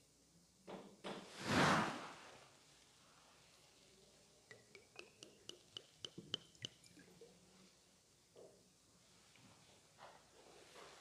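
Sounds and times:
metallic clinks of vessels: 0:04.5 - 0:07.4.

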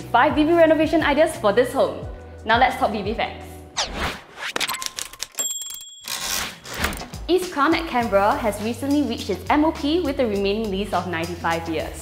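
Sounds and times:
whoosh: 0:03.8 - 0:04.7.

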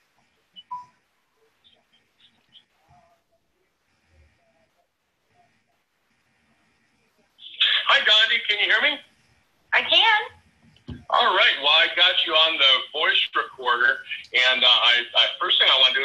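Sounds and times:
recorded voice playing back: 0:07.4 - 0:09.1, 0:09.8 - 0:16.0.

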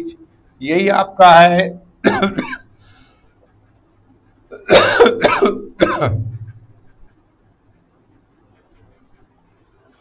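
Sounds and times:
man coughing: 0:02.0 - 0:02.8, 0:04.5 - 0:06.5.

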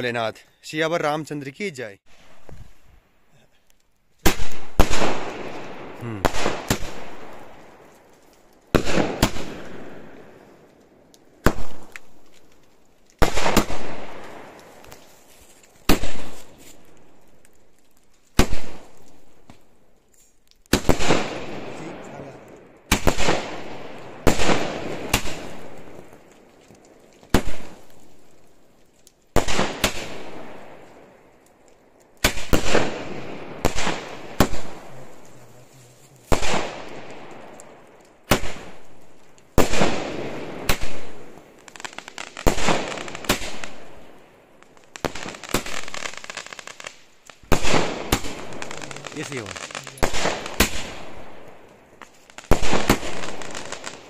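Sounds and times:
firework bangs: 0:04.2 - 0:07.9, 0:08.7 - 0:10.5, 0:11.4 - 0:12.2, 0:13.2 - 0:15.1, 0:15.8 - 0:16.8, 0:18.3 - 0:19.6, 0:20.7 - 0:26.3, 0:29.3 - 0:31.2, 0:32.2 - 0:35.3, 0:36.3 - 0:38.8, 0:39.5 - 0:54.0.

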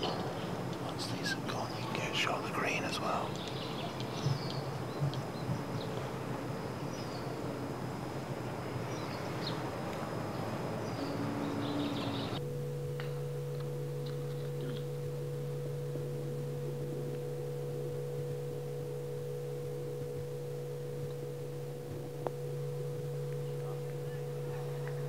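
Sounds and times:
steady electrical hum: 0:00.0 - 0:25.0.

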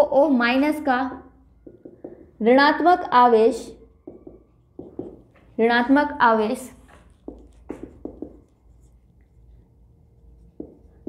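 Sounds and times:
marker pen scratching on whiteboard: 0:04.0 - 0:06.0, 0:06.6 - 0:09.5, 0:10.2 - 0:11.0.

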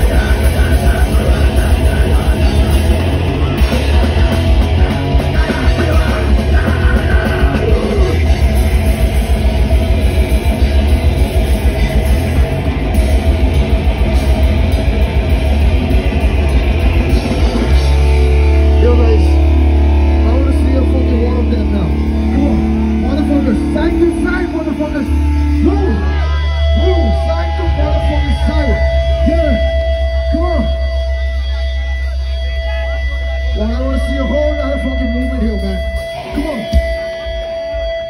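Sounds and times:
live heavy rock band: 0:00.0 - 0:38.0
voices shouting: 0:14.7 - 0:38.0.

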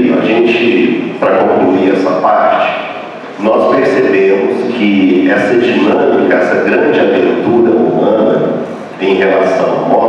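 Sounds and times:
man lecturing over sound system: 0:00.0 - 0:10.0.

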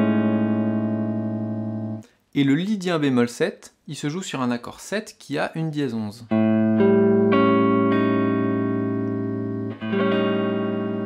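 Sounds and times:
electric guitar chord ringing: 0:00.0 - 0:02.0, 0:06.3 - 0:11.0.

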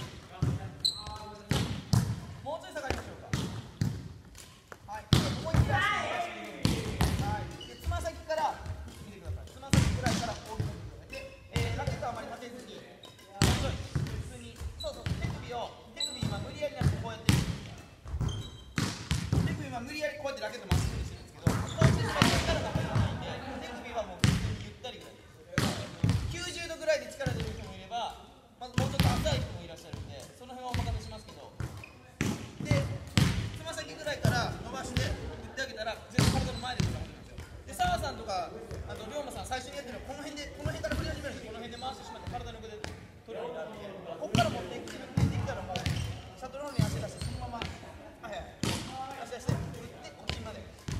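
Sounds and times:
rackets striking shuttlecocks: 0:00.0 - 0:15.6.

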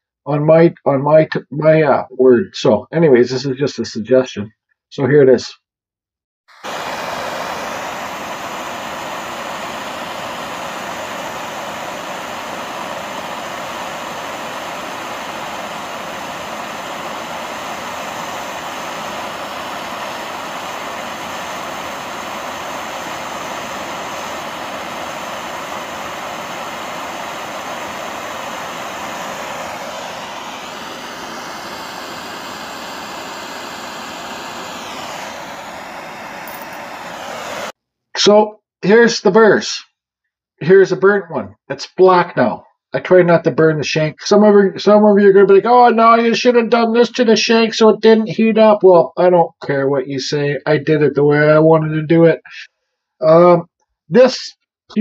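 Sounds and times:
propane torch roaring: 0:06.5 - 0:37.8.

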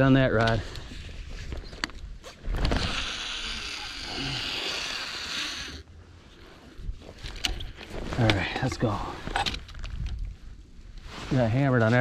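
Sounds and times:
fishing reel whirring: 0:02.6 - 0:05.9.

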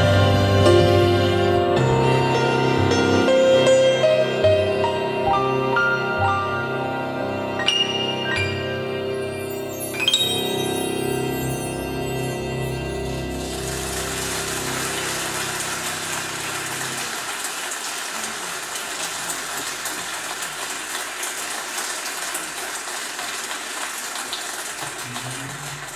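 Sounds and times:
orchestra holding a chord: 0:10.0 - 0:17.2
audience applause: 0:13.3 - 0:25.9.

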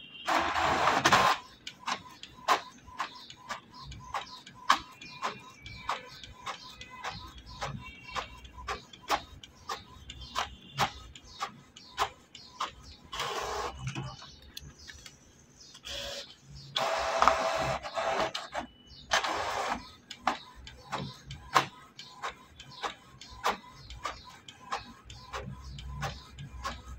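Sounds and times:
printer ticking: 0:00.2 - 0:15.1, 0:15.7 - 0:26.9
printer paper feed noise: 0:00.3 - 0:14.2, 0:15.9 - 0:26.9.

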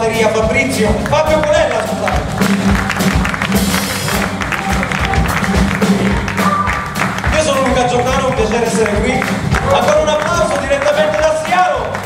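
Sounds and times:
blues-funk band playing: 0:00.0 - 0:12.0
drum kit beat: 0:00.0 - 0:12.0
audience applause: 0:00.9 - 0:12.0.

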